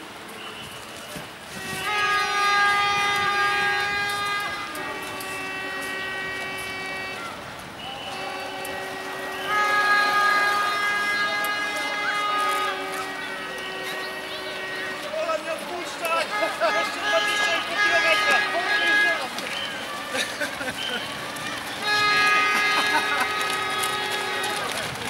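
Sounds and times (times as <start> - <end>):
long horn-like tones: 0.1 - 25.0.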